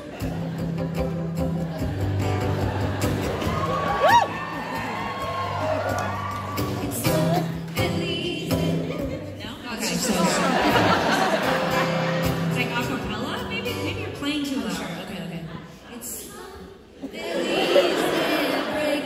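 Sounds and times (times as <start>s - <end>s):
crowd cheering: 0.0s - 8.1s, 10.2s - 12.8s
acoustic guitar playing low notes: 0.0s - 15.0s
audience member whooping: 3.4s - 7.5s.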